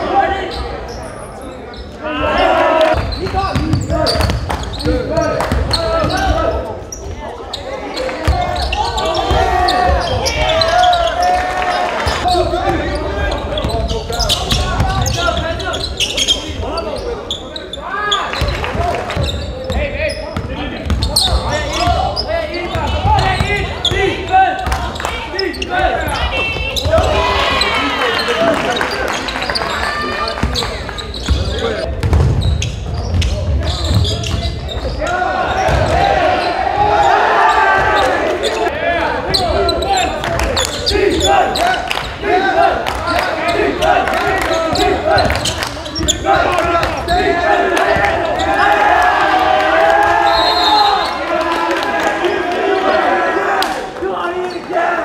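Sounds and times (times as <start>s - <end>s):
indistinct shouting voices: 2.0s - 4.2s, 21.0s - 30.4s, 35.0s - 55.0s.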